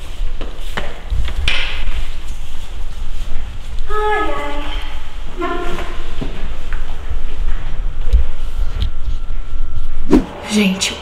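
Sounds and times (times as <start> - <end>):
fabric rubbing against microphone: 0.0 - 6.6.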